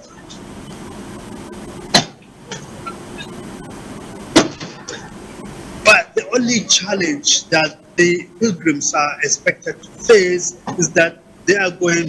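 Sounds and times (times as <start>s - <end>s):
low hum: 0.0s - 12.0s
telephone line hiss: 0.0s - 12.0s.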